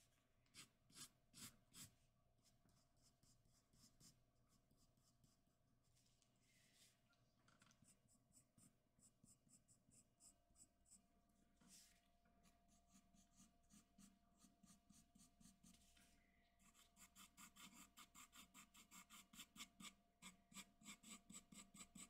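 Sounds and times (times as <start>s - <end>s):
pencil scratching on paper: 0.5s - 5.5s, 7.8s - 11.0s, 12.7s - 15.9s, 16.6s - 22.0s.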